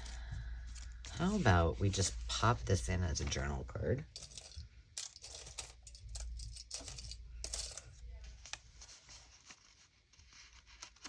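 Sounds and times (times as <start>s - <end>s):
paper rustling: 8.2s - 11.0s.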